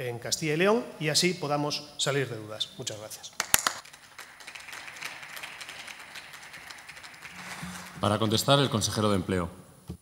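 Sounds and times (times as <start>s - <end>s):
people clapping: 3.4s - 9.1s.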